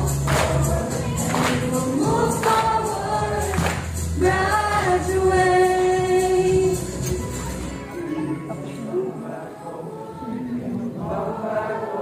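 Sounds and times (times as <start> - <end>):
group singing: 0.0 - 7.6, 9.2 - 12.0
musical accompaniment with beat: 0.0 - 8.6.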